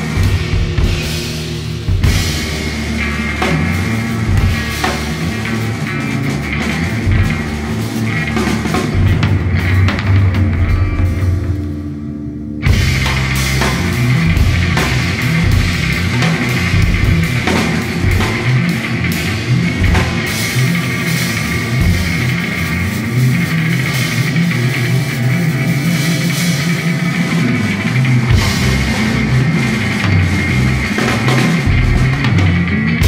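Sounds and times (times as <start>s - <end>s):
live instrumental rock: 0.0s - 33.0s.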